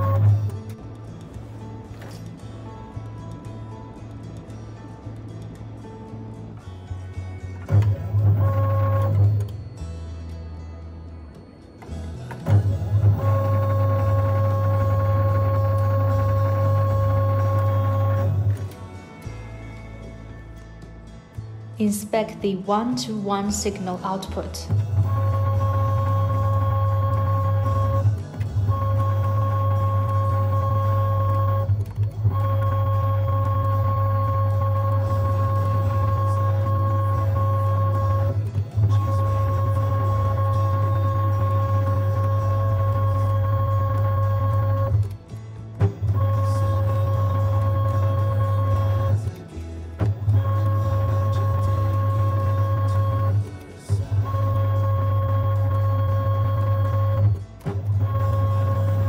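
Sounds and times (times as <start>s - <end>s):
electric motor hum: 0.0s - 0.7s, 7.6s - 9.5s, 12.5s - 18.9s, 24.7s - 59.0s.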